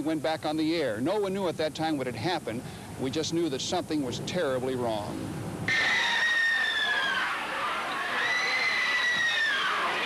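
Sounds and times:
crowd voices in uproar: 5.7s - 10.0s
high-pitched screams: 5.7s - 10.0s.

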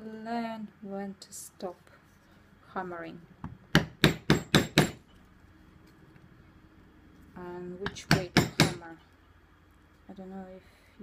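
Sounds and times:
mallet striking metal tool: 8.0s - 8.8s.

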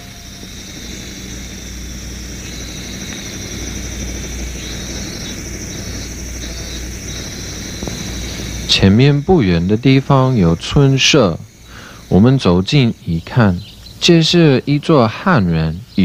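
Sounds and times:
insects buzzing: 0.0s - 16.0s
steady low drone: 0.0s - 16.0s.

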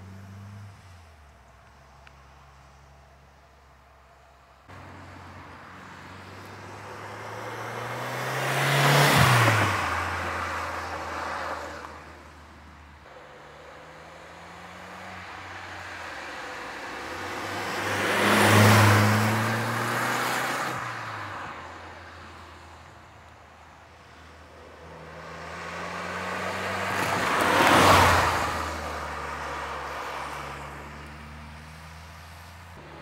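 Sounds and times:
car driving past: 4.7s - 12.1s, 13.1s - 22.4s, 24.6s - 33.0s.

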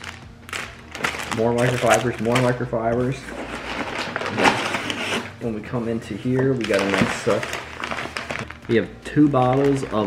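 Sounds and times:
packing paper rustling: 0.0s - 10.0s.

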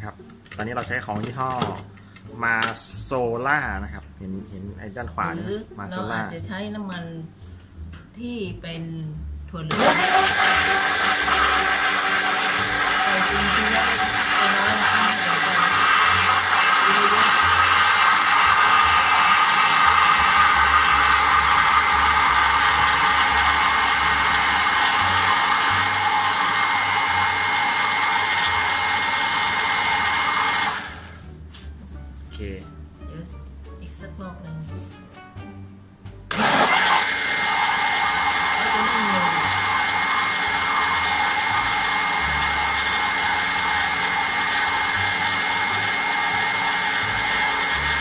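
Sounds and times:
electric blender running: 9.7s - 31.4s, 36.3s - 48.0s.

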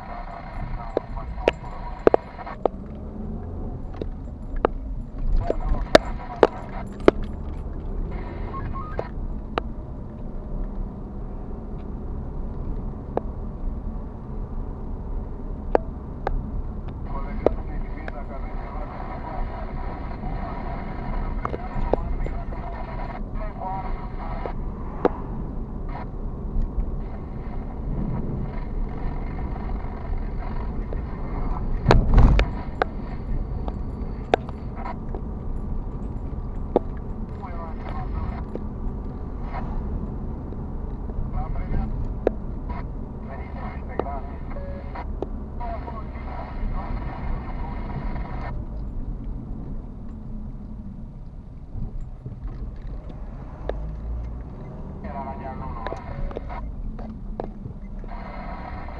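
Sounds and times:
car road and engine noise: 0.0s - 58.9s
loud thump: 31.8s - 32.5s.

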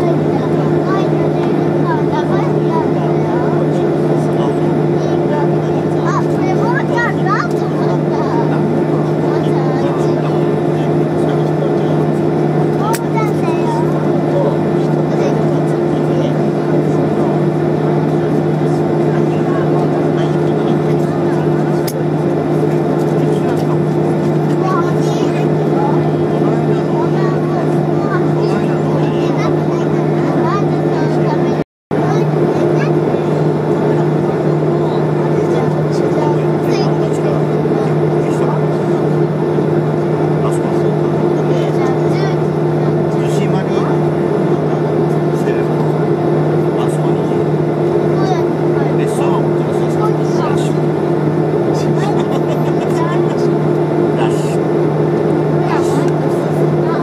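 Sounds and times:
aircraft engine and cabin drone: 0.0s - 57.0s
low hums: 0.0s - 57.0s.

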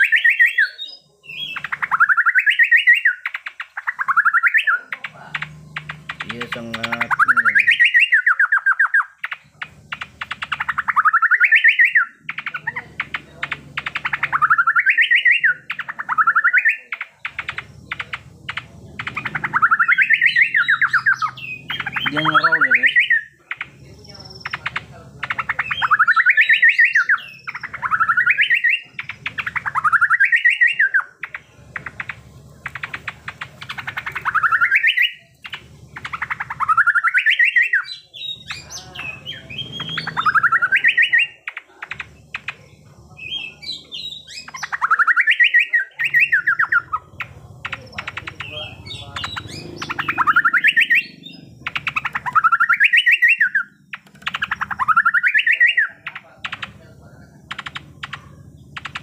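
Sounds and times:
bird song rapid rattling bursts: 1.4s - 59.0s.

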